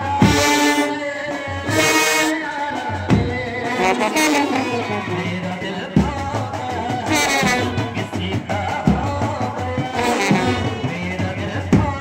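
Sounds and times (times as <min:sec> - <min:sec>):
brass band playing: 0:00.0 - 0:06.0, 0:06.7 - 0:08.7, 0:09.5 - 0:11.8
drum beat: 0:00.0 - 0:12.0.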